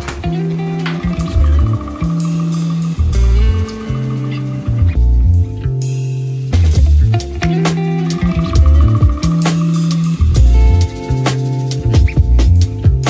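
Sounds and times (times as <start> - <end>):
deep bass notes: 0.0 - 13.0
plucked string melody: 0.0 - 13.0.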